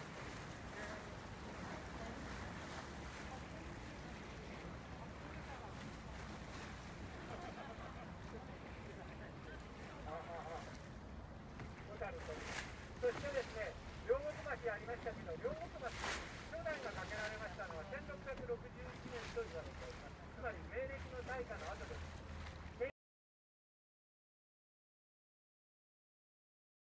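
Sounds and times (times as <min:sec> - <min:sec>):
boat engine rumble: 0:00.0 - 0:22.9
water and wind noise: 0:00.0 - 0:22.9
people talking: 0:00.7 - 0:06.3, 0:07.2 - 0:10.8, 0:11.8 - 0:22.0.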